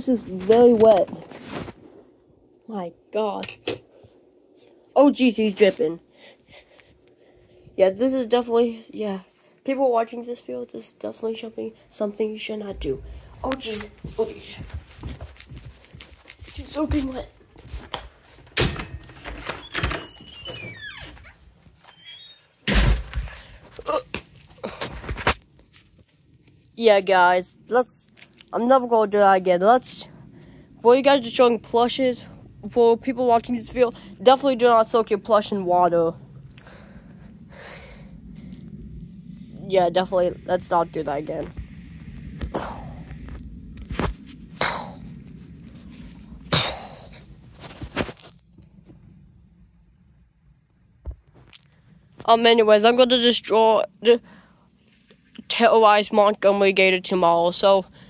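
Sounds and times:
footsteps on grass: 12.8 - 18.2
door squeaking: 18.6 - 23.0
heavy door thump: 22.6 - 23.3.

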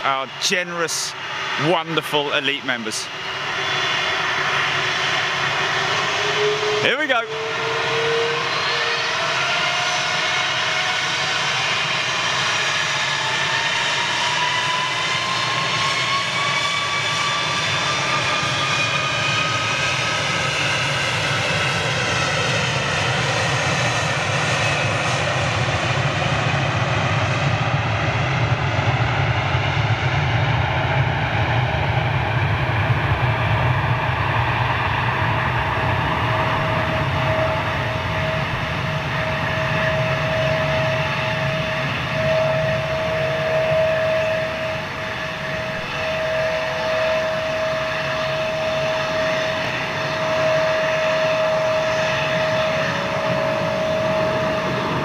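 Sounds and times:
jet engine whine rising: 0.0 - 55.0
jet roar: 0.0 - 55.0.

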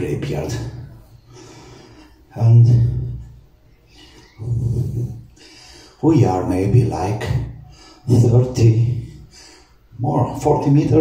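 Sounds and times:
soft breath: 0.8 - 2.3, 3.1 - 6.0, 7.6 - 8.1, 9.2 - 9.9
man murmuring: 4.2 - 5.4.

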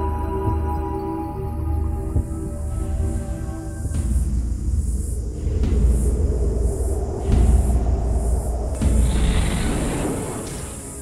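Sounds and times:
dark cinematic score: 0.0 - 11.0.

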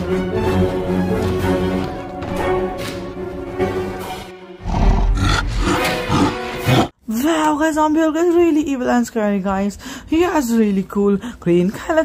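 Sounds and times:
monster growling roars: 4.6 - 6.9.

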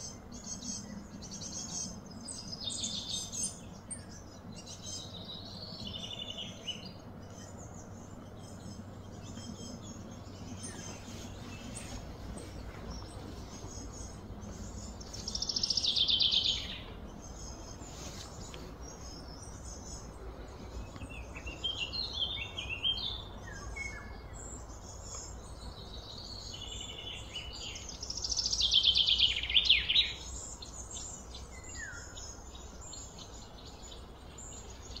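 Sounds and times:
birds chirping and calling: 0.0 - 35.0
steady low background hum: 0.0 - 35.0.

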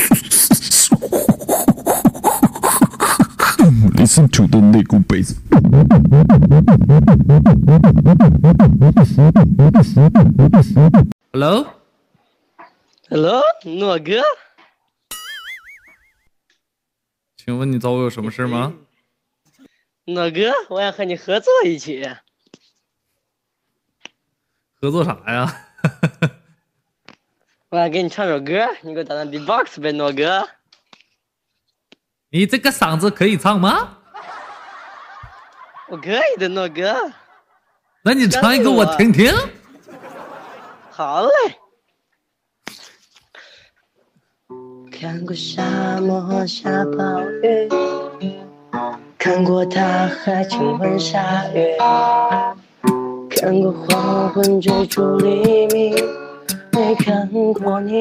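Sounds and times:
beatboxing bass sweeps: 0.0 - 11.2, 38.1 - 39.6, 52.8 - 57.2
man snickering softly: 25.6 - 26.5.

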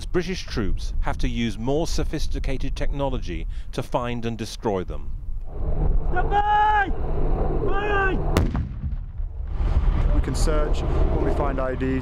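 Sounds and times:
low rumbling: 5.2 - 12.0
explosive detonation blast: 8.3 - 10.0.

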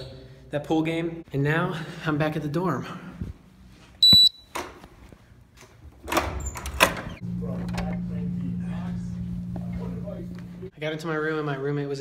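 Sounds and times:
keycard reader beep: 4.0 - 4.5.

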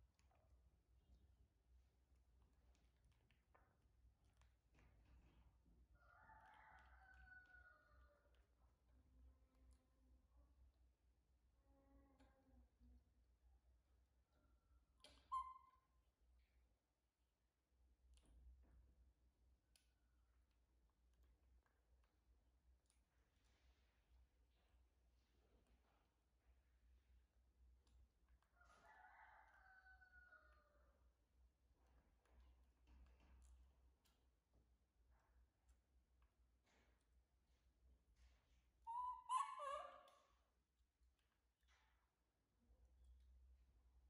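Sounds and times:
rooster crowing faintly: 6.0 - 8.6, 28.4 - 31.2.

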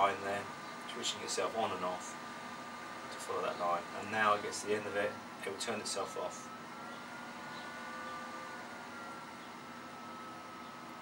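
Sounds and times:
faint high whine: 0.0 - 11.0
fan noise: 0.0 - 11.0.

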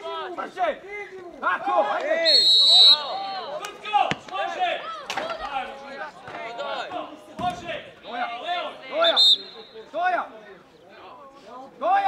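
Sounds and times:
people shouting outdoors: 0.0 - 10.4.

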